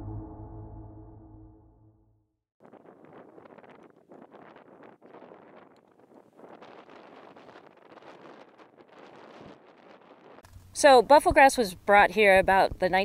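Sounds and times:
gusty wind buffeting microphone: 0:02.6 - 0:11.5.

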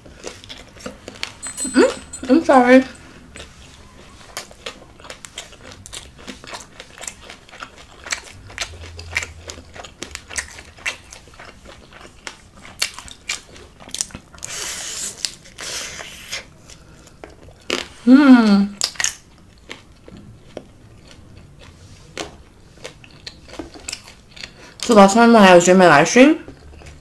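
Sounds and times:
chewing tacos: 0:00.0 - 0:01.6, 0:02.9 - 0:27.0.

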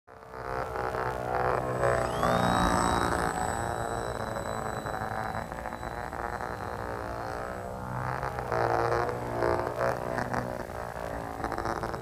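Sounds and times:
electric model plane motor whine: 0:00.1 - 0:12.0.

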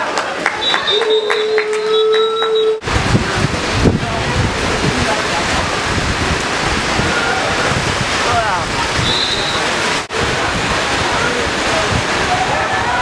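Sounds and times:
wind buffeting microphone: 0:02.8 - 0:13.0.

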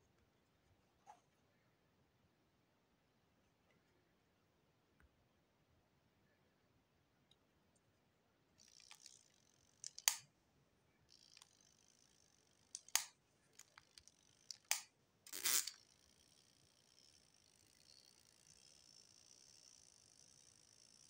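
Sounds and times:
plastic timer clicks: 0:08.6 - 0:10.3, 0:11.1 - 0:21.0.

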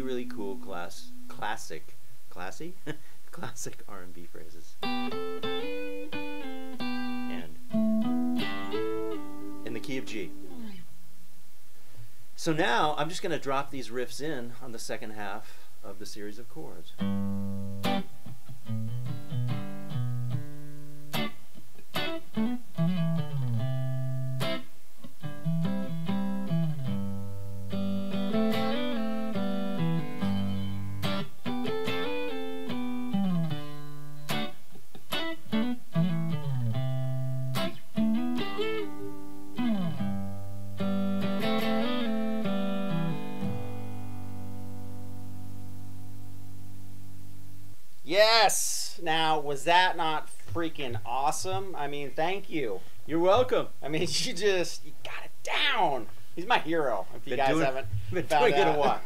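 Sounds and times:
electric guitar rhythm playing: 0:00.0 - 0:01.5, 0:04.8 - 0:10.8, 0:17.0 - 0:48.8, 0:55.8 - 0:59.0.

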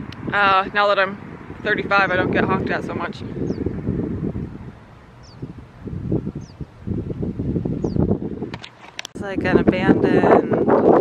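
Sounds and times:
wind buffeting microphone: 0:00.0 - 0:11.0
bird chirping: 0:03.3 - 0:03.8, 0:04.9 - 0:05.5, 0:06.3 - 0:06.8, 0:07.7 - 0:08.2.

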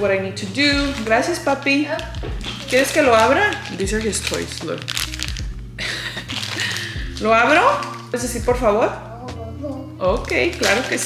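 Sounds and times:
plastic bag crinkling: 0:00.0 - 0:08.4, 0:10.1 - 0:11.0.

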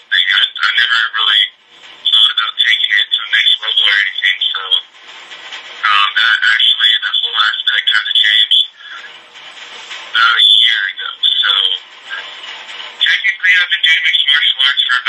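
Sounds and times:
man talking: 0:00.0 - 0:04.9, 0:05.8 - 0:09.1, 0:10.1 - 0:12.3, 0:13.0 - 0:15.0.

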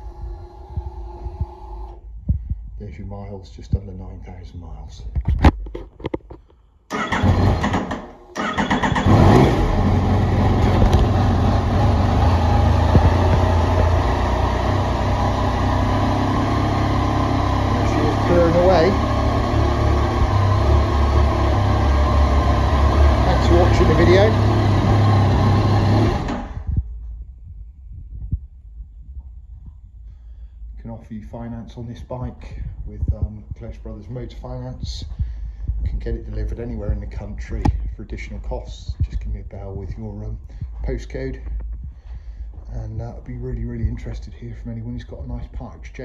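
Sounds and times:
starter motor cranking: 0:00.0 - 0:02.0, 0:06.9 - 0:11.4, 0:17.7 - 0:26.7
motorcycle engine starting and idling: 0:00.0 - 0:02.1, 0:06.9 - 0:26.9
ignition clicks: 0:10.6 - 0:11.2.

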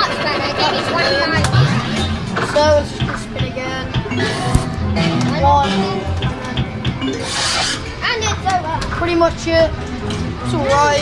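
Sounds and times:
arcade electronic music and jingles: 0:03.6 - 0:08.4.

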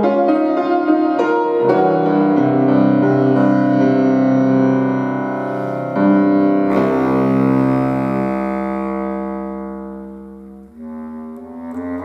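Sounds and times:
bass clarinet: 0:00.0 - 0:12.0
piano accompaniment: 0:00.0 - 0:12.0.

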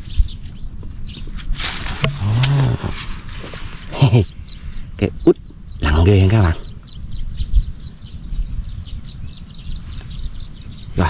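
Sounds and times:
man making low wordless sounds: 0:02.1 - 0:03.0, 0:03.9 - 0:06.8.

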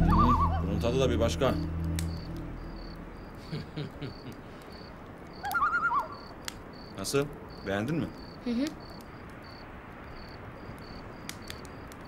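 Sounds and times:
warbling high tone: 0:00.0 - 0:03.4
low music cue: 0:00.0 - 0:03.9
crickets chirping: 0:00.0 - 0:12.0.

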